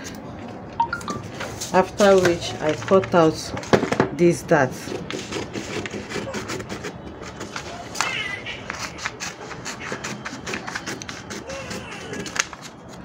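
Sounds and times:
brief high-pitched sound: 0:00.8 - 0:01.3
scissors snipping paper: 0:04.9 - 0:13.0.

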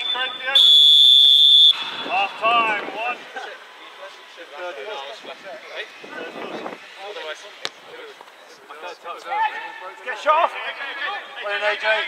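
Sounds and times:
distant shouts and calls: 0:00.0 - 0:04.8.

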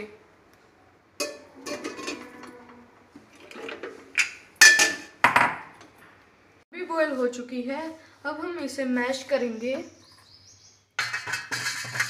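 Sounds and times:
roots knocking against metal pot: 0:11.0 - 0:12.0.

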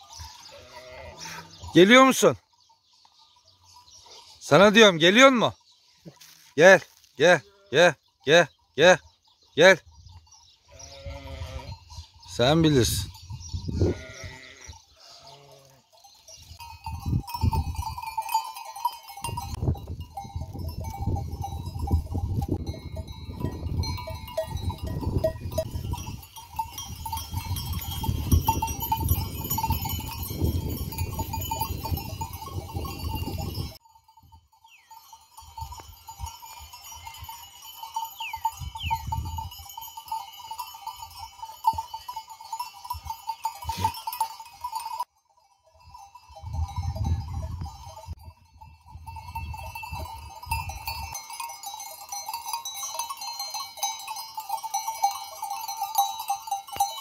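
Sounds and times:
sheep bells clinking: 0:00.0 - 0:57.0.

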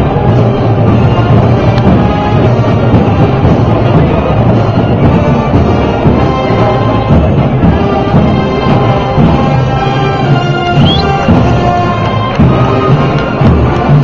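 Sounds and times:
deep drums: 0:00.0 - 0:14.0
parade band playing: 0:00.0 - 0:14.0.

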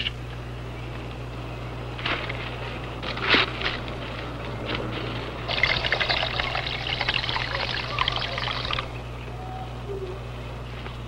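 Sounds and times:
steady low hum: 0:00.0 - 0:11.0
water pouring into vase: 0:05.5 - 0:08.9.

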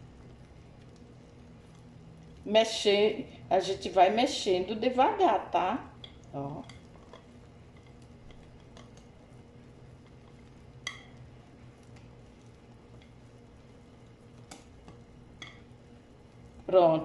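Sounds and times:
whisk stirring thick batter: 0:06.1 - 0:16.7.

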